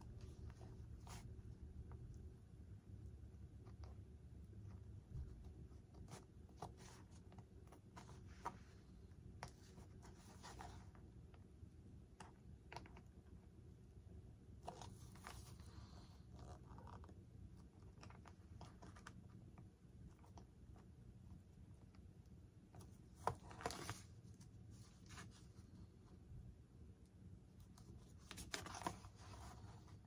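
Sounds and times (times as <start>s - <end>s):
faint scratching on foam: 4.7s - 11.1s, 14.6s - 17.7s, 27.6s - 30.0s.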